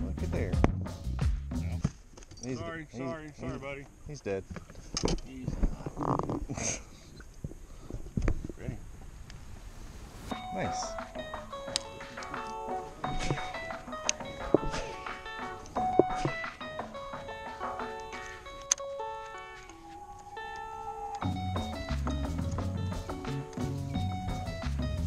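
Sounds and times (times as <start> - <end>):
bell-like melody: 10.3 - 23.0
low bass line: 21.2 - 25.0.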